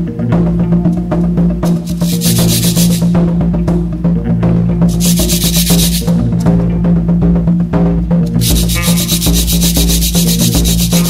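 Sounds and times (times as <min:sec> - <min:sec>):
busy percussion: 0:00.3 - 0:11.0
fast even scraping: 0:01.7 - 0:03.1, 0:04.9 - 0:06.2, 0:08.3 - 0:11.0.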